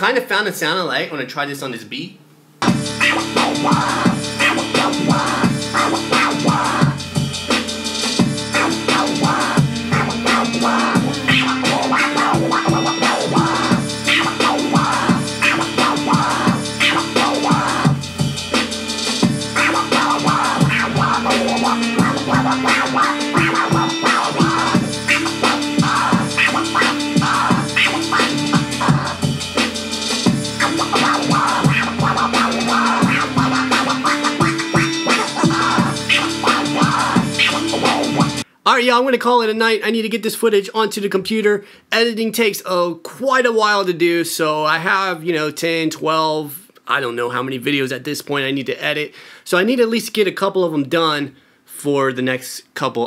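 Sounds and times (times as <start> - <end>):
looped hip-hop beat: 2.6 - 38.4
vinyl record scratching: 2.6 - 39.6.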